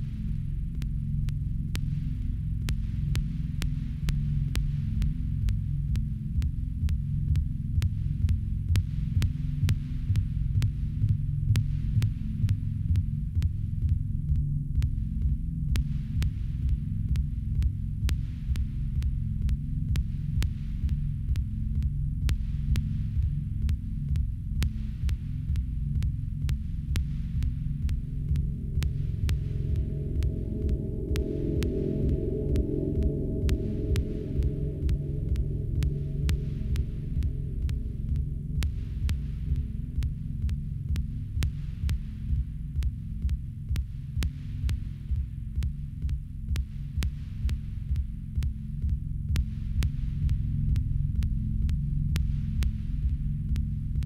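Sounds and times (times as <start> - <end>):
pulsing low drone: 26.4 - 41.5
higher steady tone: 28.2 - 38.8.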